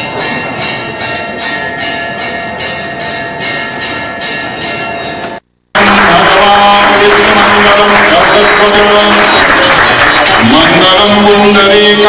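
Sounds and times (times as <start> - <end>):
bells ringing: 0.0 - 12.0
applause: 5.7 - 12.0.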